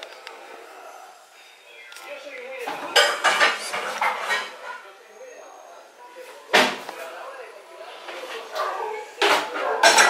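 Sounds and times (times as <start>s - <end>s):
dishes and cutlery clattering: 2.7s - 4.8s, 8.1s - 10.0s.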